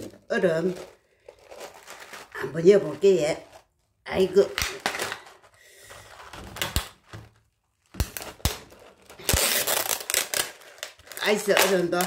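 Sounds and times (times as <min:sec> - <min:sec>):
ice cubes rattling in plastic container: 0:00.0 - 0:06.7, 0:08.2 - 0:12.0.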